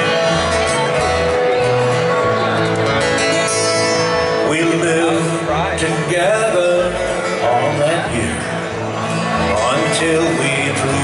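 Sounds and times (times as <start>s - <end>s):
folk song on guitars: 0.0s - 11.0s.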